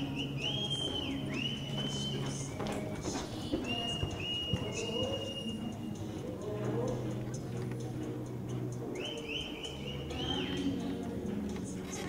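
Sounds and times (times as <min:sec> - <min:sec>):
horse hooves on dirt: 0:00.0 - 0:05.3
spectators whistling: 0:00.0 - 0:06.2, 0:08.8 - 0:11.0.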